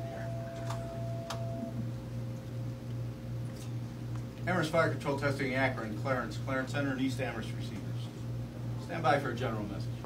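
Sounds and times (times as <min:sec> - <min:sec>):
steady electronic tone: 0:00.0 - 0:01.8
low pulsing hum: 0:00.0 - 0:04.5.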